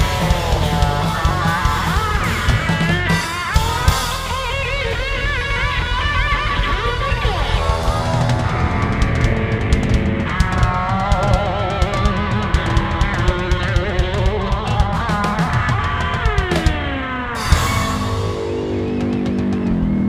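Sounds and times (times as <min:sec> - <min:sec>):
bass guitar: 0:00.0 - 0:20.0
drums and cymbals: 0:00.0 - 0:20.0
electric guitar lead with bent notes: 0:00.0 - 0:20.0.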